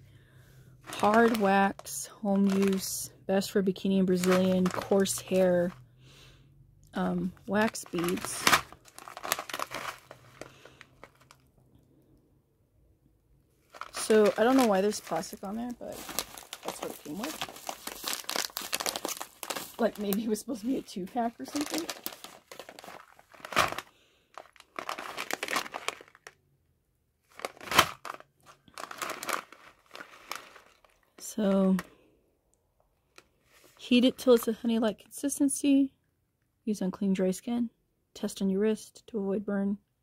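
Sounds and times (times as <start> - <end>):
plastic pouch crinkling: 0.9 - 3.0, 4.0 - 5.8, 7.3 - 11.5, 13.6 - 26.4, 27.3 - 31.9.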